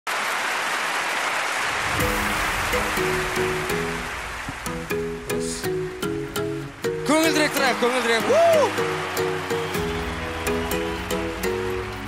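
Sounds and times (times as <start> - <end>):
audience applauding: 0.1 - 6.2, 6.8 - 12.0.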